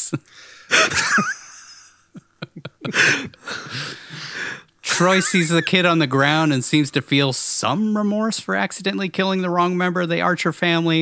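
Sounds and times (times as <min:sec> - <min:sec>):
men laughing: 0:00.7 - 0:06.0.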